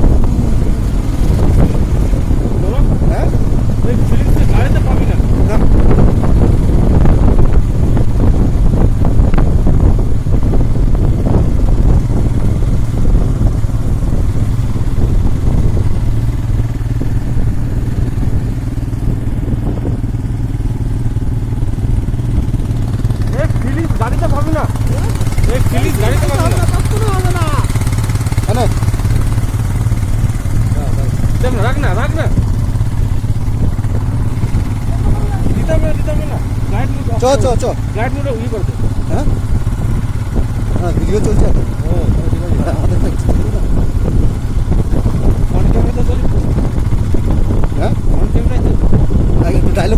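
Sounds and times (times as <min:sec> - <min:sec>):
motorcycle engine running: 0:00.0 - 0:49.9
wind and road rumble: 0:00.0 - 0:49.9.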